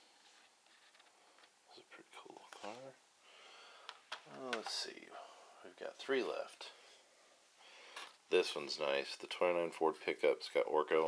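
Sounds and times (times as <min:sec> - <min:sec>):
man murmuring quietly: 0:01.6 - 0:03.0.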